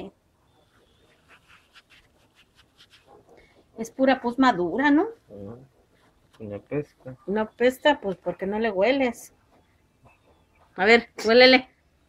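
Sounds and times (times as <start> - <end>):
paper tissue rustling on skin: 0.7 - 3.3.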